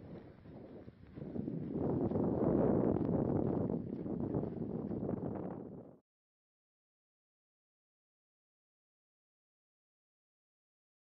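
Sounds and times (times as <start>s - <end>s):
wind buffeting microphone: 0.0s - 6.0s.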